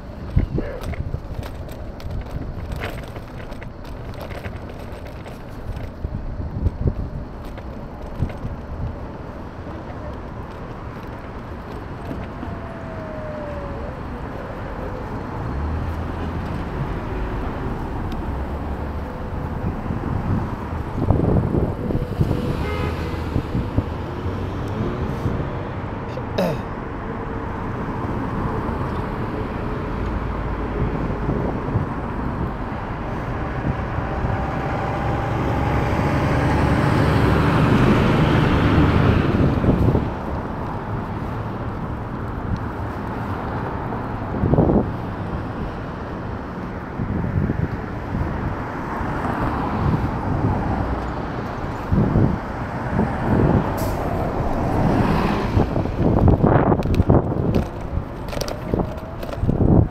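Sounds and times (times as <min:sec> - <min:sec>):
road traffic rumble: 0:00.0 - 0:59.9
vehicle passing: 0:47.0 - 0:59.9.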